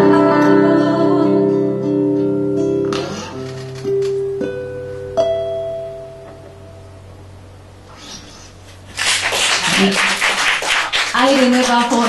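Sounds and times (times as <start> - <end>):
nylon-string guitar playing: 0.0 - 7.7.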